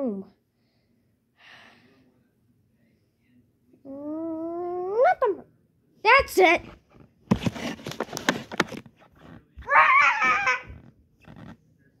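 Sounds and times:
knocks and rustling from handling: 6.2 - 9.7
high-pitched wavering vocal cry: 9.6 - 10.8.

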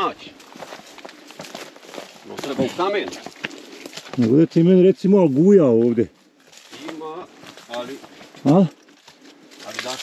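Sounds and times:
footsteps on rocky path: 0.0 - 10.0.

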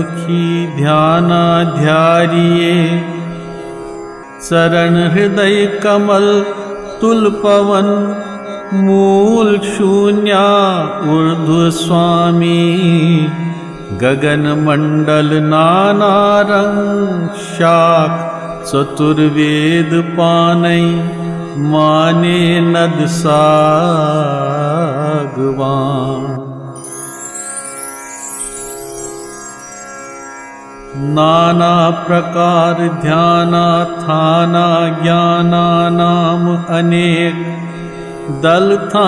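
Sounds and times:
man singing devotional song: 0.0 - 3.4, 4.4 - 29.7, 30.9 - 39.0
slow melodic music: 26.8 - 31.4.

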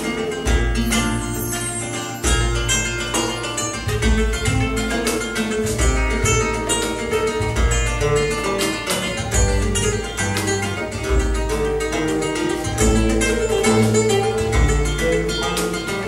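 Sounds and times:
flamenco guitar: 0.0 - 16.0
hand drum strokes: 0.0 - 16.0.

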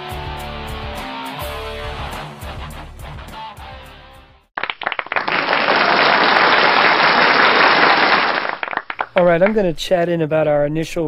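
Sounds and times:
guitar music: 0.0 - 4.3
audience applause: 4.6 - 9.4.

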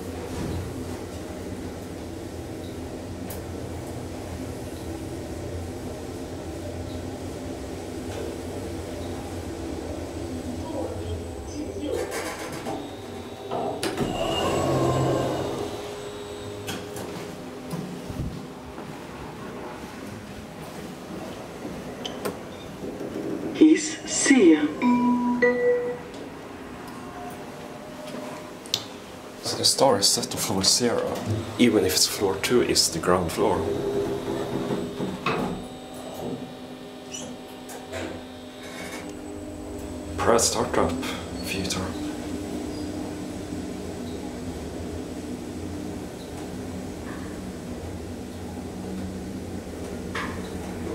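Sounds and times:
elevator doors sliding shut: 11.8 - 18.4, 32.8 - 39.1
elevator doors sliding open: 11.8 - 19.2, 30.7 - 50.9.

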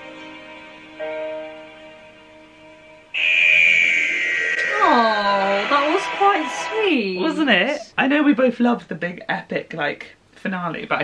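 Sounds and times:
high-pitched electronic tone: 3.2 - 7.5
woman's voice: 4.6 - 7.9.

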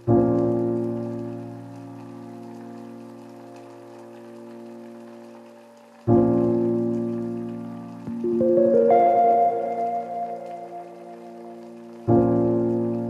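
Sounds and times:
faint crackling texture: 0.5 - 13.0
sustained keyboard chord: 8.2 - 11.6.

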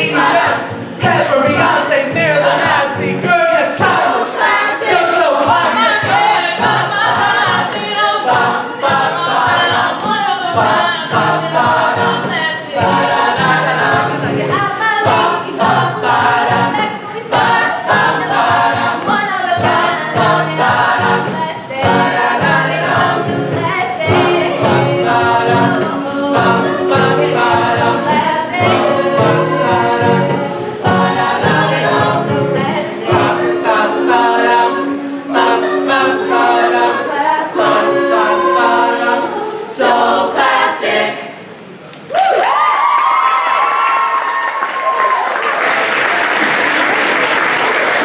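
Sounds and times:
a cappella group singing: 0.0 - 41.6.

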